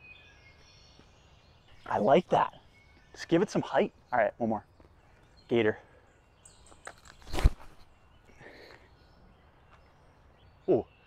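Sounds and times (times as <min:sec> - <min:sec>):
faint outdoor background: 0:00.0 - 0:11.0
disc throw whoosh and thump: 0:07.2 - 0:07.8.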